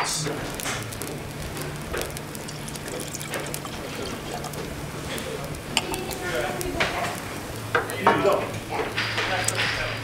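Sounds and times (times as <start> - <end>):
cider pouring and fizzing: 0.5 - 8.5.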